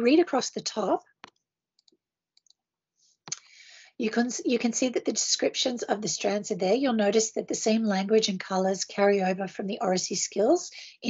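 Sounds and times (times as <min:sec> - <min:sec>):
breathy in-breath: 0:03.0 - 0:04.0.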